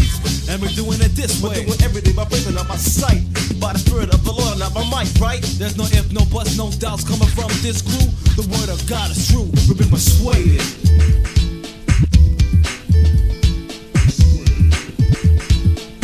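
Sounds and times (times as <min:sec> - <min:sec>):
rapping over a drum beat: 0:00.0 - 0:11.6, 0:14.0 - 0:15.8
steady bass line: 0:00.0 - 0:16.0.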